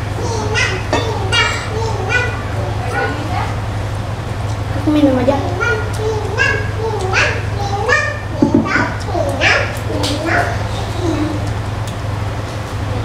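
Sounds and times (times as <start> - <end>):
children chattering and calling out: 0.0 - 3.8, 4.6 - 11.7
steady low hum: 0.0 - 13.0.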